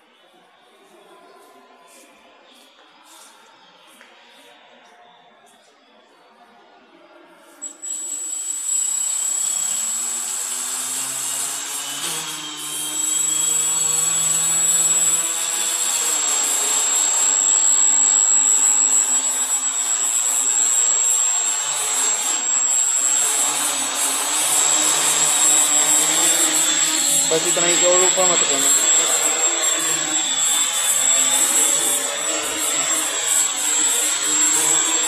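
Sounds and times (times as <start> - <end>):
quadcopter motors whirring: 7.6 - 35.0.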